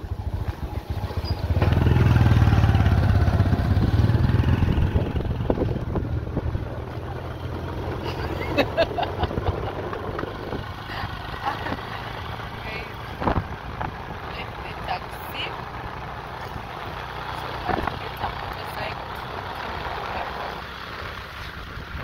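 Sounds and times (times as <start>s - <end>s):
motorcycle engine humming: 0.0s - 22.0s.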